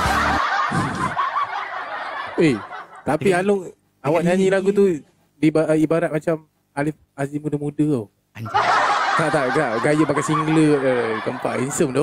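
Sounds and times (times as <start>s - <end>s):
karaoke backing music: 0.0s - 1.1s
man chuckling and laughing: 0.0s - 1.4s.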